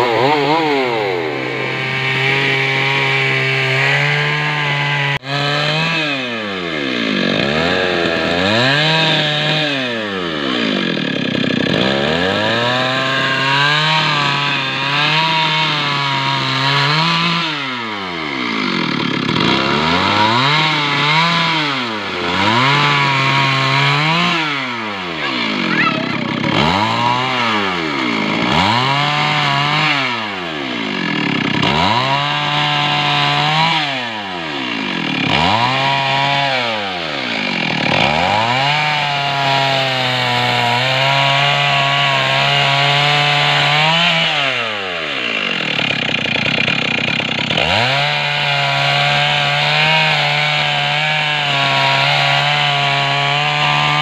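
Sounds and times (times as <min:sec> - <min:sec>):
chainsaw ripping a log: 0:00.0 - 0:54.0.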